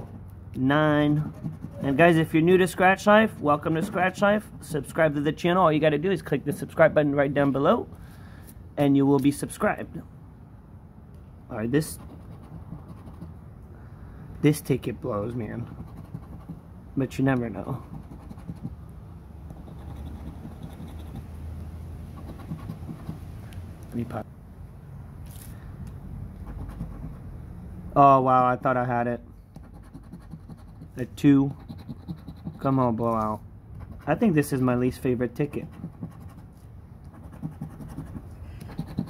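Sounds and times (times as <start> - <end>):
scratch-off ticket being scratched: 0.9 - 5.2, 11.7 - 13.4, 15.6 - 18.8, 19.5 - 21.3, 22.1 - 23.2, 26.4 - 27.2, 29.5 - 39.0.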